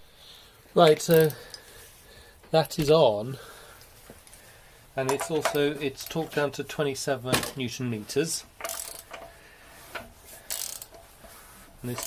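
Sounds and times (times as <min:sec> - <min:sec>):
ratchet wrench clicking: 0:01.1 - 0:01.6, 0:08.6 - 0:09.3, 0:10.4 - 0:11.1.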